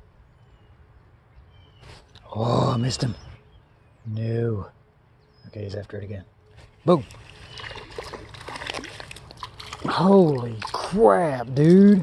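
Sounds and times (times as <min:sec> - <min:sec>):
fish splashing at water surface: 0:07.1 - 0:11.2.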